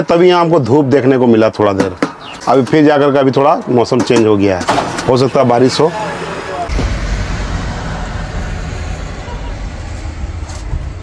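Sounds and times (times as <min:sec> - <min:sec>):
motor vehicles rumbling: 0:01.8 - 0:11.0.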